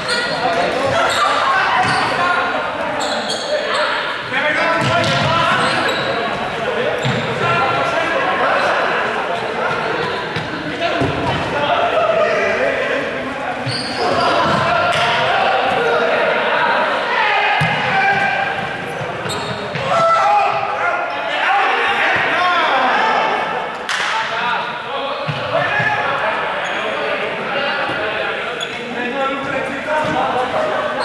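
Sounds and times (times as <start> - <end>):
young people shouting echoing: 19.8 - 23.6.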